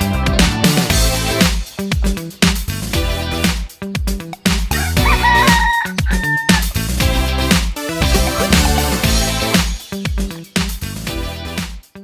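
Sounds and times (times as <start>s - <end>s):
disco-funk music: 0.0s - 12.0s
rooster crowing: 4.7s - 6.8s.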